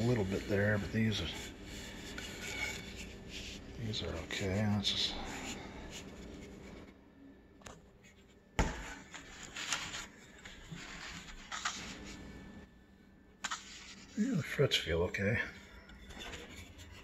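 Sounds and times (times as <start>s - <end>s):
rubbing and rustling paper: 0.0s - 7.0s, 8.0s - 12.5s, 13.4s - 14.6s, 15.5s - 17.0s.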